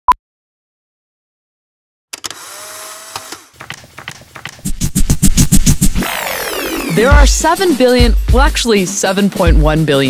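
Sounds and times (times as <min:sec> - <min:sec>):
camera motor whirring: 0:02.2 - 0:03.5.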